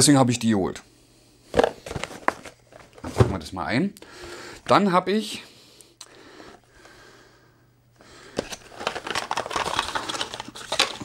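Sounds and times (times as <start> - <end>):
packaging rustling: 1.5 - 3.1, 8.3 - 11.0.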